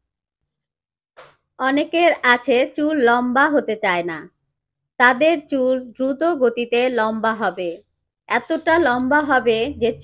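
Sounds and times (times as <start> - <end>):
narrator speaking: 5.0 - 10.0.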